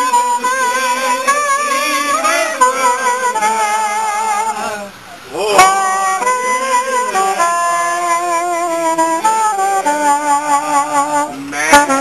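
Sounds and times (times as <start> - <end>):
reed wind instrument melody: 0.0 - 12.0.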